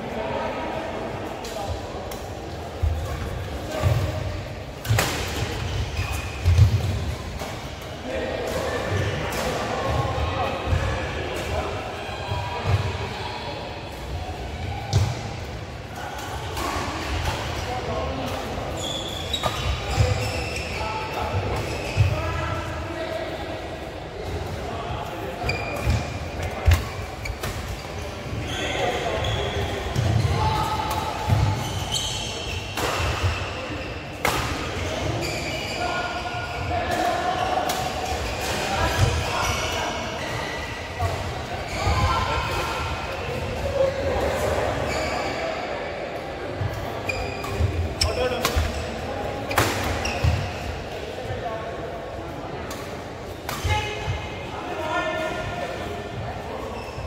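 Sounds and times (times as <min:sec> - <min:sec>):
shoes squeaking on floor: 0:18.8 - 0:22.2, 0:31.5 - 0:33.5, 0:35.1 - 0:35.9, 0:44.9 - 0:45.4, 0:47.0 - 0:49.0.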